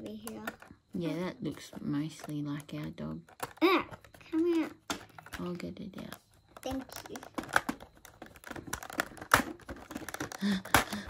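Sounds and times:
small plastic clicks and taps: 0.0 - 0.8, 2.2 - 11.0.

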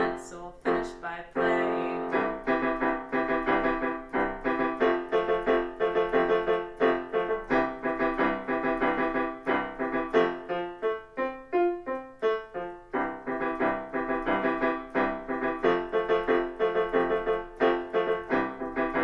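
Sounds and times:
digital piano chords: 0.0 - 19.0.

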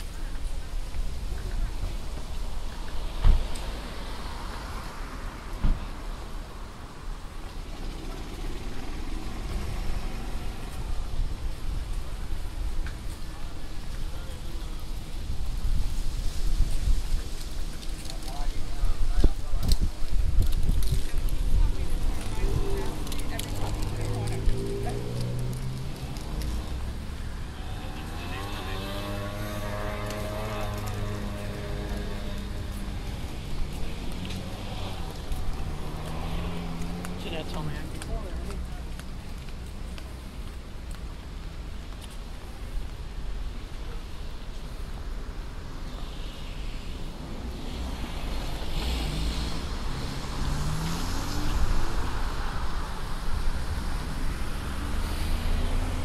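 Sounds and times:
low rumble of traffic: 0.0 - 56.0
vehicles passing: 0.0 - 56.0
people's voices: 16.8 - 41.2.

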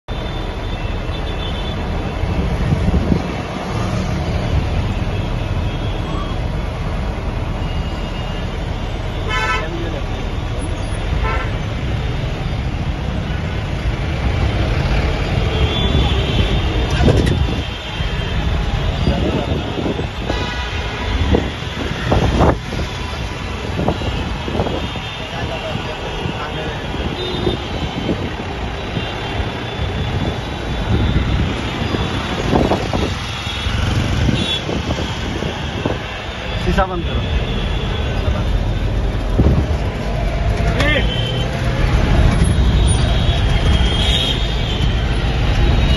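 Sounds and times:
engine and road rumble: 0.0 - 45.9
vehicle horns honking: 9.1 - 10.0, 11.2 - 11.6, 15.5 - 22.6, 23.8 - 28.3, 28.9 - 36.0, 40.8 - 41.6, 42.4 - 44.9.

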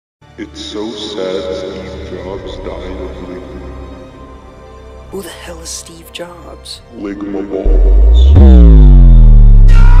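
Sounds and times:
distorted bass-boosted tone sliding down: 7.7 - 10.0.

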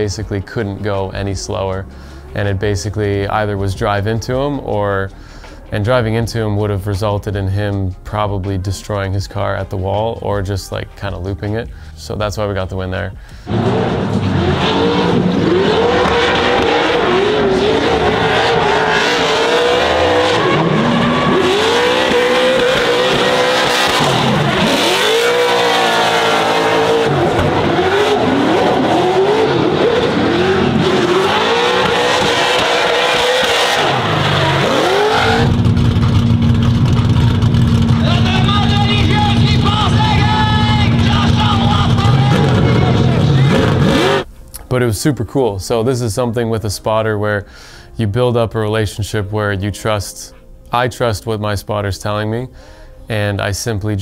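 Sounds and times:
car engines revving: 13.5 - 44.3.

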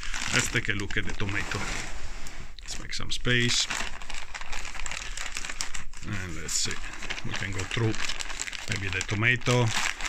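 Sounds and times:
plastic bags crinkling: 0.0 - 1.6, 2.6 - 10.0.

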